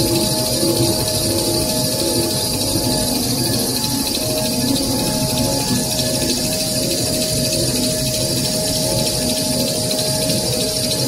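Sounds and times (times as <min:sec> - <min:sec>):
rewinding machine running: 0:00.0 - 0:11.0.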